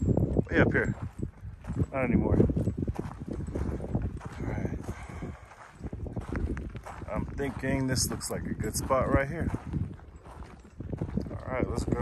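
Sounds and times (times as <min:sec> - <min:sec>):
footsteps on gravel: 0:00.1 - 0:12.0.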